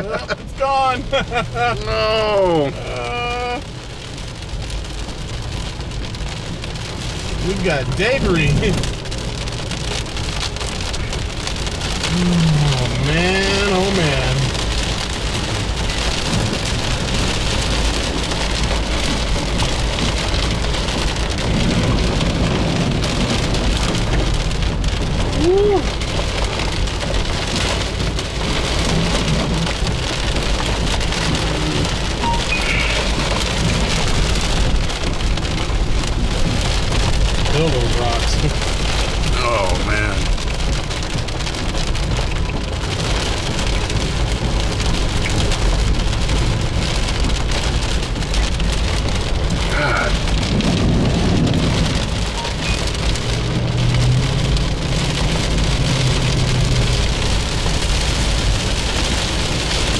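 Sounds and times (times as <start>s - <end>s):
car driving on flooded road: 0.0s - 59.9s
heavy rain on car roof: 0.0s - 59.9s.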